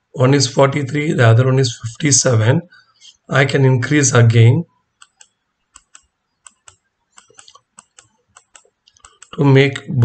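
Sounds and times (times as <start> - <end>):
light computer clicks: 5.0 - 9.4.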